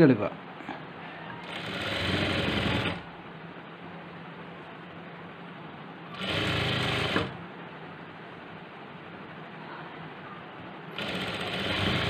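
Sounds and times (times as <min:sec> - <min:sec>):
sewing machine stitching: 0:01.4 - 0:03.1, 0:06.1 - 0:07.4, 0:11.0 - 0:12.0.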